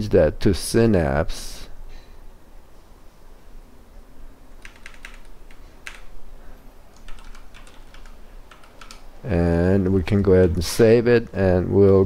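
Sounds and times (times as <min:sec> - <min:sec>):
computer keyboard typing: 0:04.6 - 0:06.1, 0:06.9 - 0:09.1.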